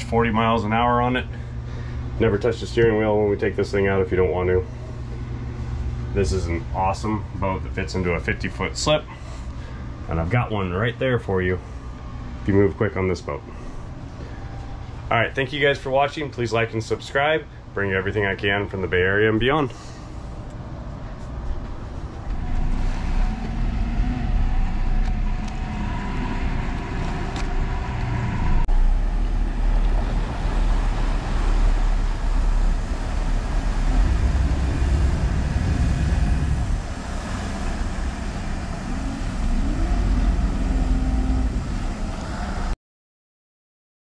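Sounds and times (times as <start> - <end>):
boat engine drone: 0.0 - 42.8
rush of boat wake: 22.4 - 42.8.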